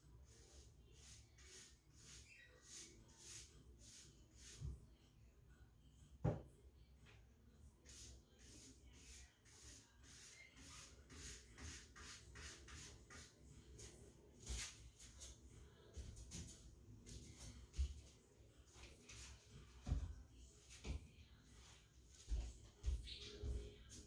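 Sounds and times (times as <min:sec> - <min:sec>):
paintbrush swishing on wood: 0:00.2 - 0:04.8, 0:07.8 - 0:15.4.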